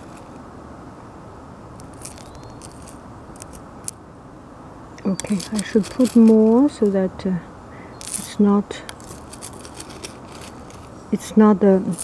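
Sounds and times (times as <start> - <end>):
dried tea rustling and clicking: 1.8 - 3.6, 5.0 - 7.0, 8.0 - 12.0.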